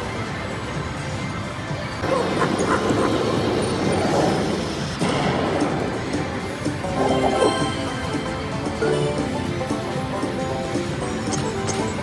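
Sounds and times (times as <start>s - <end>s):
slot machine music and effects: 2.8s - 12.0s.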